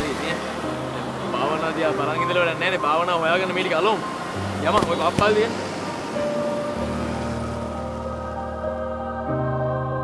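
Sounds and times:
road traffic passing: 0.0 - 9.5
background music chords: 0.0 - 10.0.

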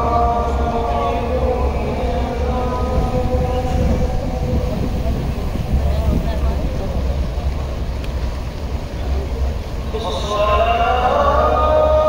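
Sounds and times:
call to prayer over loudspeakers: 0.0 - 8.1, 8.8 - 12.0
wind rumble on microphone: 0.0 - 10.8.

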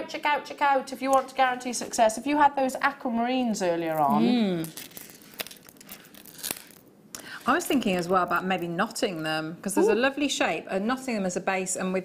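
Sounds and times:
beads clicking and rustling: 3.9 - 6.8.

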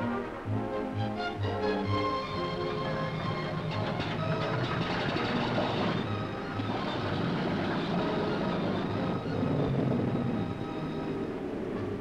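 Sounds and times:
radial piston aircraft engine drone: 1.2 - 12.0.

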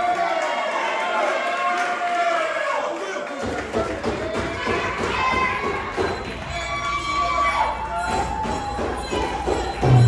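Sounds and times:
crowd voices: 2.0 - 10.0.

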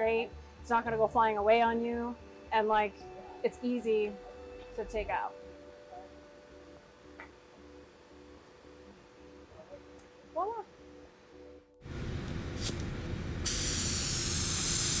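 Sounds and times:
steady spray-like hiss: 13.4 - 15.0.

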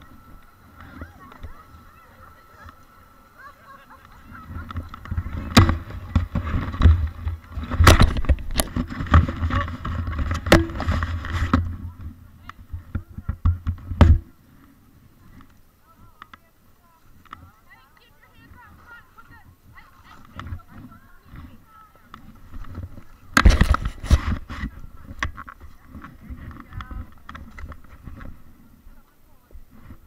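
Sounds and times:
wind rumbling on camera microphone: 0.0 - 16.4, 17.0 - 30.0
faint rustling: 0.0 - 30.0.

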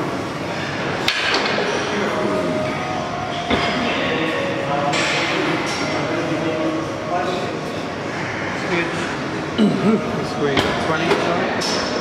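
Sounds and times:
steady gym rumble: 0.0 - 12.0
faint voices: 1.7 - 11.6.

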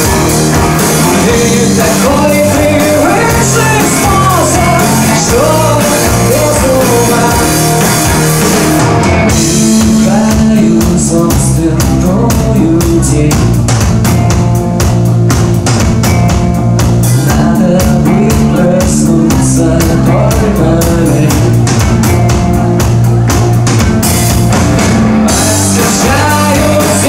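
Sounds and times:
drum kit beat: 0.0 - 27.0
live rock band playing: 0.0 - 27.0
man singing: 0.9 - 8.2, 9.3 - 13.7, 17.2 - 21.8, 25.3 - 27.0.

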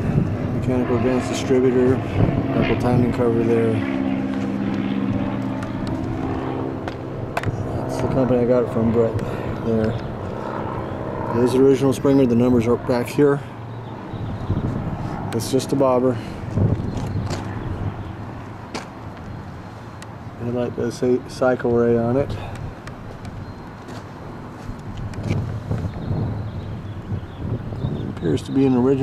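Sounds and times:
steady engine drone: 0.0 - 29.0.

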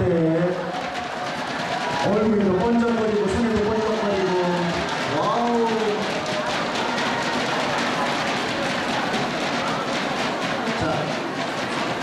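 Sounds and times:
drum beat: 0.0 - 12.0
noisy hall background: 0.0 - 12.0.

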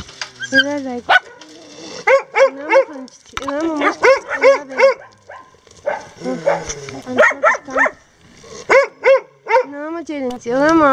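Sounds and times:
dog barking: 1.1 - 3.0, 3.6 - 8.0, 8.7 - 9.8.

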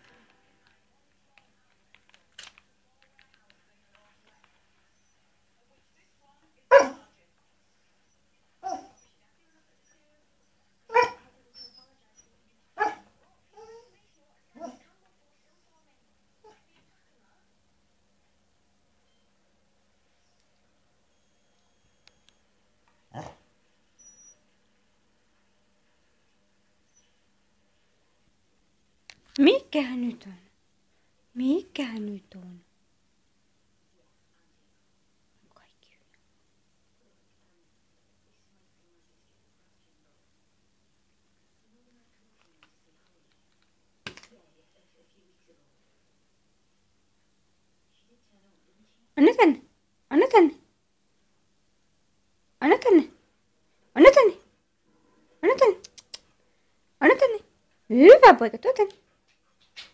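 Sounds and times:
faint low hum: 0.0 - 59.9
dog barking: 6.7 - 7.2, 8.6 - 9.1, 10.9 - 11.3, 12.8 - 13.9, 23.1 - 23.4.

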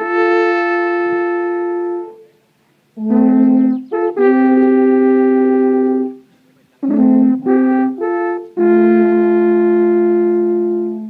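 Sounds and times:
alphorns holding long note: 6.8 - 11.0.

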